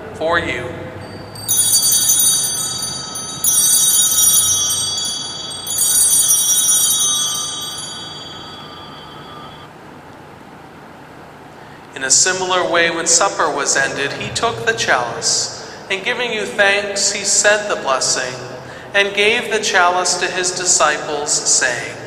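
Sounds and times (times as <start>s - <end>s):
altar bells ringing: 1.0s - 9.7s.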